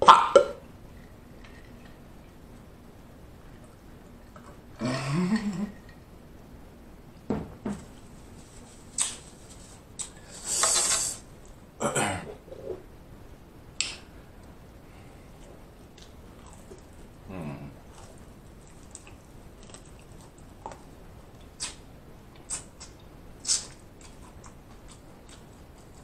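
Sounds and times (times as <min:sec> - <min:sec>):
hiss: 0:10.2 - 0:11.2, 0:23.4 - 0:23.8
chewing crunchy food: 0:15.4 - 0:17.2, 0:17.8 - 0:21.8, 0:22.4 - 0:26.0
mouth smacks: 0:21.4 - 0:25.5.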